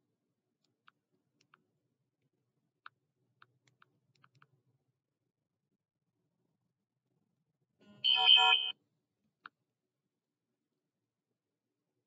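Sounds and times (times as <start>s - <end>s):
short high electronic tone: 8.1s - 8.7s.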